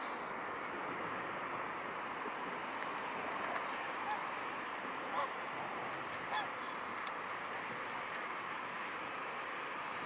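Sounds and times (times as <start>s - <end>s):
background hiss: 0.0s - 10.0s
waterfowl calls: 4.0s - 4.4s, 5.1s - 5.4s, 6.3s - 7.0s.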